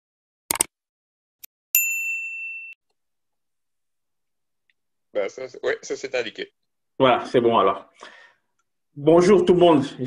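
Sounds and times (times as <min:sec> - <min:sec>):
bright bell ding: 0:01.8 - 0:02.8.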